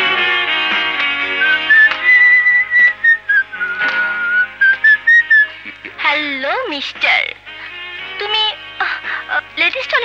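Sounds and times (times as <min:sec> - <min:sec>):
soft instrumental accompaniment: 0:00.0 - 0:10.0
whistled melody: 0:01.2 - 0:05.6.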